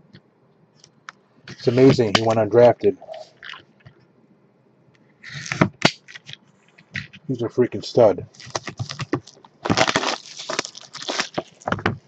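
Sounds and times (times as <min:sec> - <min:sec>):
foil wrapper rustling: 0:08.3 - 0:12.0.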